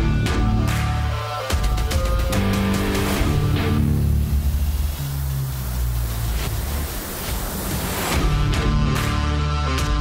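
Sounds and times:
noisy hiss: 0:00.0 - 0:09.2.

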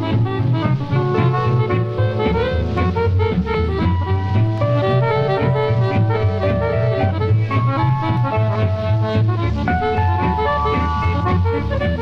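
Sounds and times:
country swing band playing: 0:00.0 - 0:12.0.

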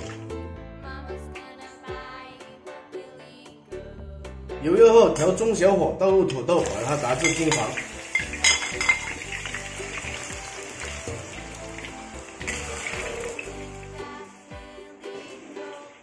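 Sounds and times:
background music: 0:00.0 - 0:16.0
potatoes deep-frying hiss: 0:06.4 - 0:16.0
plate and ladle clinking on wok: 0:07.2 - 0:09.6.

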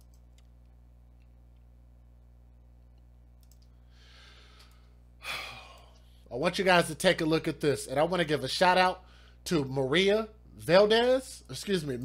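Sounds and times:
low electrical hum: 0:00.0 - 0:12.0
soft breath: 0:03.7 - 0:06.3
man sighing: 0:05.2 - 0:06.2.

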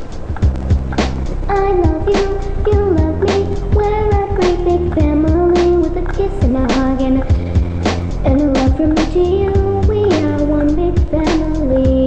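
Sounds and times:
sharp percussion beat: 0:00.0 - 0:12.0
stepping melody line: 0:00.1 - 0:12.0
bass line: 0:00.4 - 0:12.0.

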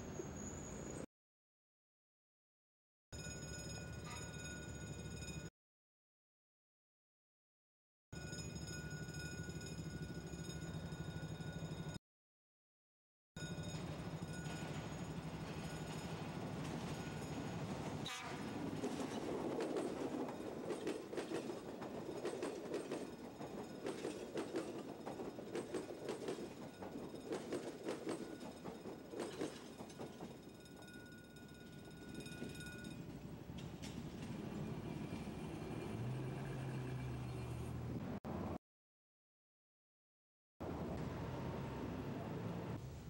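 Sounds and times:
wheels clattering over rail joints: 0:13.6 - 0:38.0
electric train passing: 0:13.6 - 0:38.5.

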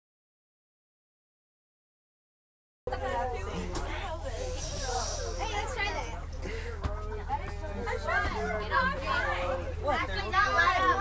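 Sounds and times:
background voices talking: 0:02.9 - 0:11.0.

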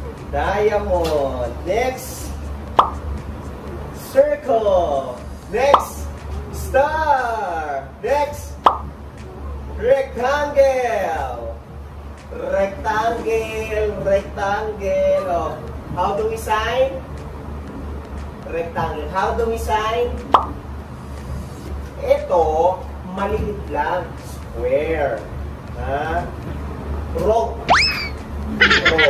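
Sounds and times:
steady low hum: 0:00.0 - 0:29.0
short pop with rising sweep: 0:02.8 - 0:03.0, 0:08.6 - 0:08.9.

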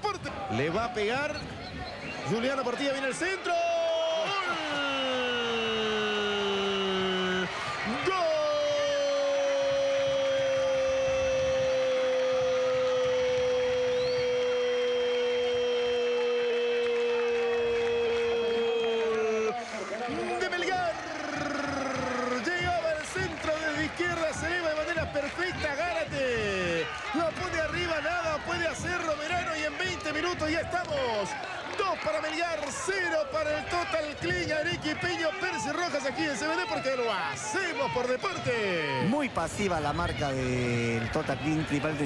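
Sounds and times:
commentator long goal shout: 0:03.2 - 0:13.8, 0:16.2 - 0:42.0
commentator fast excited talk: 0:19.1 - 0:42.0.

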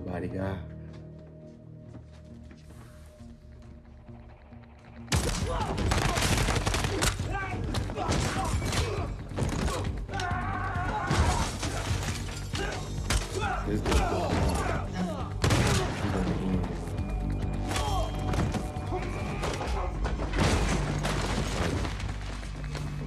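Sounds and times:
low film music: 0:00.0 - 0:23.0
rapid gunfire and impacts: 0:05.1 - 0:10.0.

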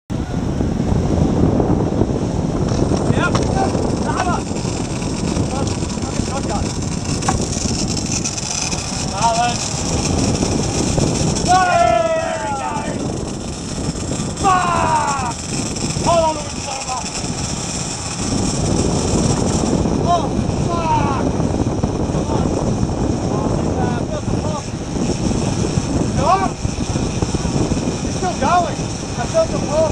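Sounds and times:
rushing boat wake and wind: 0:00.1 - 0:29.9
outboard motor running: 0:00.3 - 0:29.9
people shouting calls: 0:11.4 - 0:13.0, 0:14.4 - 0:15.4.

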